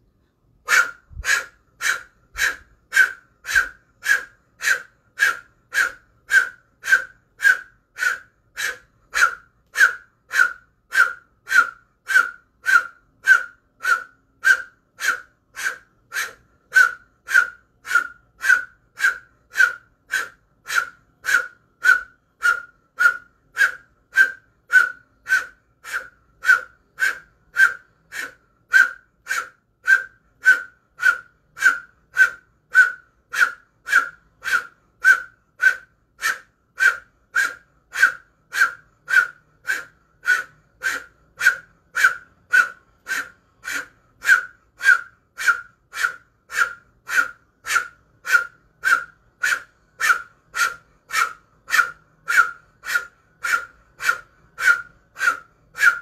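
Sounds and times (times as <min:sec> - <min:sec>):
sharp rhythmic breath exhales: 0:00.2 - 0:56.0.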